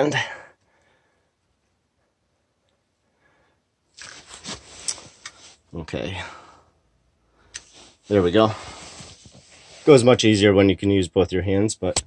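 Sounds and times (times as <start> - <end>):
hands rustling against gear: 3.9 - 5.6, 7.6 - 10.2.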